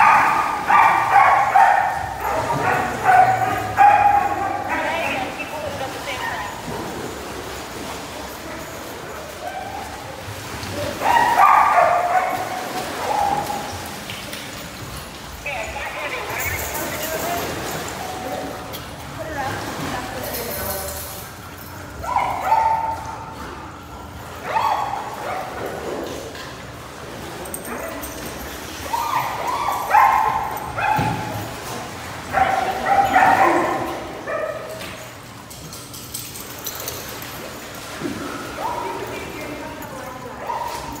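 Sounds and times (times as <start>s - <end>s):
dogs barking: 0.0s - 5.4s, 10.9s - 14.0s, 22.0s - 23.4s, 24.3s - 26.0s, 27.5s - 35.1s, 40.3s - 41.0s
water splashing: 0.0s - 41.0s.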